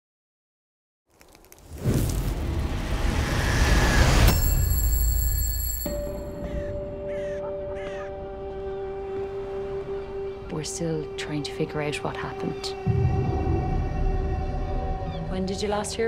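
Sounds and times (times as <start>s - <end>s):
crow cawing: 6.4s - 8.8s.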